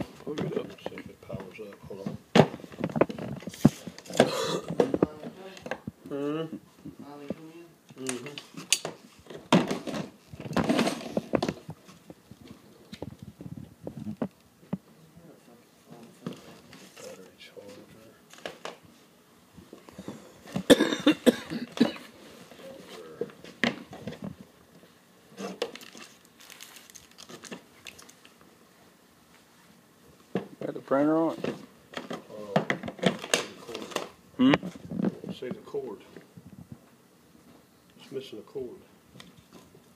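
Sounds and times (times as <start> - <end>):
packaging crinkling: 25.4 - 28.4.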